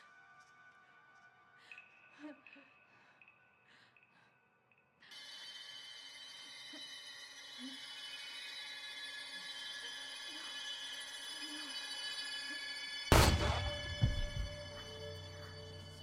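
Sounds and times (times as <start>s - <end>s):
high shimmering drone: 5.1s - 16.0s.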